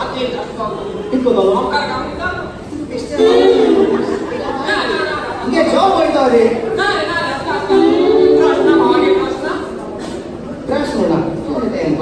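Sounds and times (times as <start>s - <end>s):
men speaking through microphones: 0.0s - 4.6s, 7.4s - 9.9s.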